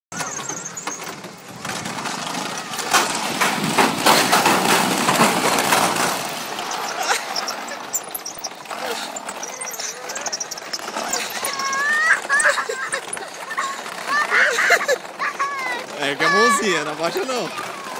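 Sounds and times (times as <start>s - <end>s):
metal rollers clattering: 0.1s - 17.9s.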